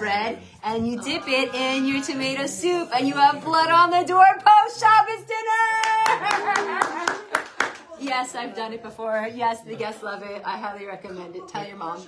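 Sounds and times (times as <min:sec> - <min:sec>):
hand claps: 0:05.8 - 0:07.9.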